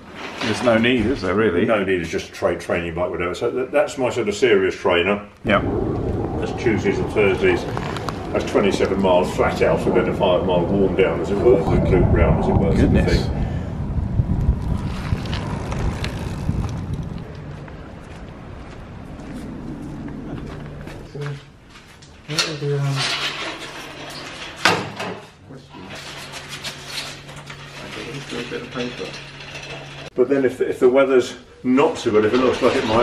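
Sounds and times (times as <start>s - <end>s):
steady low hum: 5.4s - 21.7s
wind and road noise: 5.4s - 21.8s.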